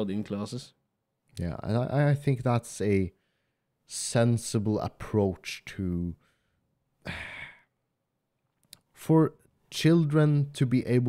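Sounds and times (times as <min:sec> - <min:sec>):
man breathing close to microphone: 0:06.2 - 0:07.7.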